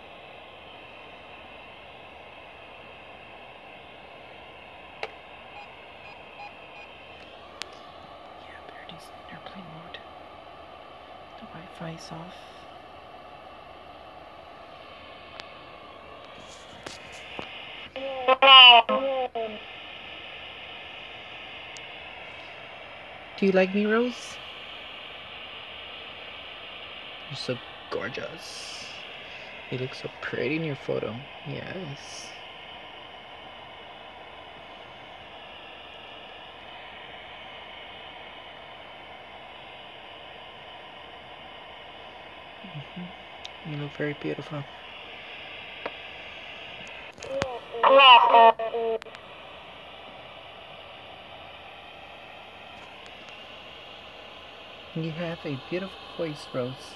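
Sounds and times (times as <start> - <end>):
radio static hiss: 0.0 - 56.9
voice-like radio fragment: 16.3 - 20.0, 27.2 - 32.5, 42.6 - 49.2.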